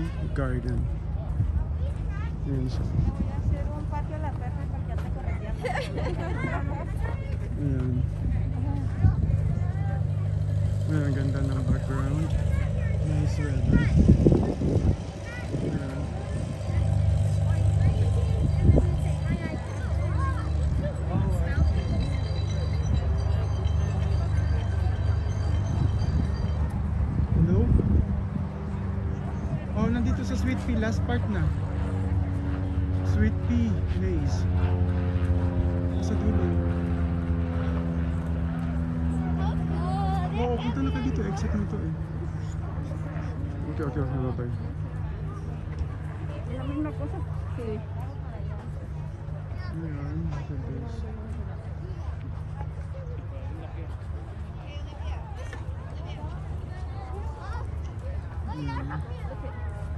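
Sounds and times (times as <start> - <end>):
faint voices: 0.0 - 59.9
steady engine drone: 0.0 - 59.9.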